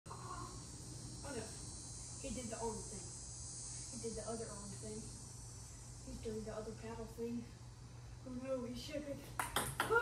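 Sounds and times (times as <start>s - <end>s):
high-pitched buzzing drone: 0.1s - 7.2s.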